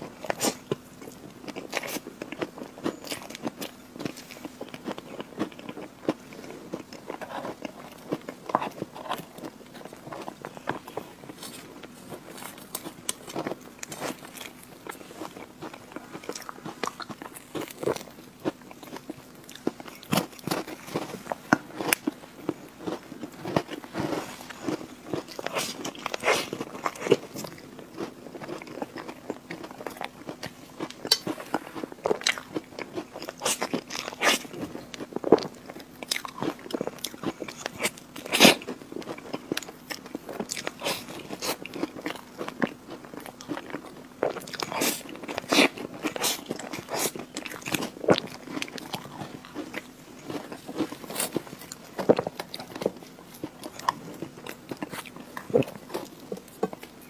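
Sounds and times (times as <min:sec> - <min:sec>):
cookie crunching: 0:00.0 - 0:57.0
faint steady hum: 0:00.0 - 0:57.0
wet chewing and smacking: 0:00.0 - 0:57.0.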